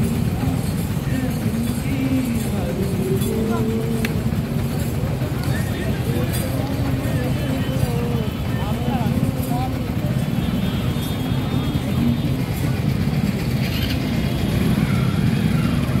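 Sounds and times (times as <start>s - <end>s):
people talking and calling out: 0.0s - 16.0s
road traffic rumble: 0.0s - 16.0s.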